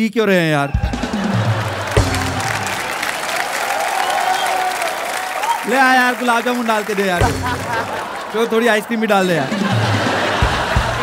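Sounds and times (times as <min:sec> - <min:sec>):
background music: 0:00.6 - 0:11.0
audience applauding: 0:00.8 - 0:11.0.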